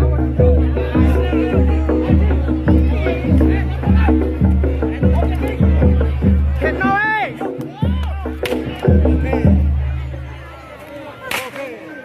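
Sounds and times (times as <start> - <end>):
low percussion music: 0.0 - 10.4
faint crowd voices: 0.0 - 12.0
whip crack: 8.4 - 8.6, 11.2 - 11.8.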